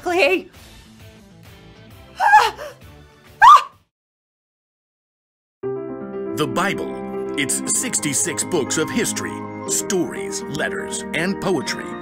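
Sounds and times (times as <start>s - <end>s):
soft background music: 5.7s - 12.0s.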